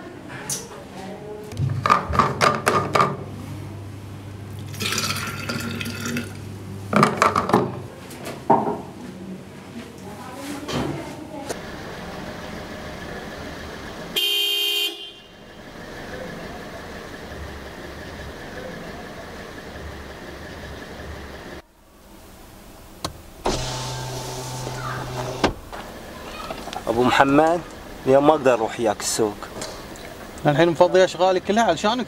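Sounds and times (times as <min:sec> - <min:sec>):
car horn honking: 0:14.1 - 0:15.6.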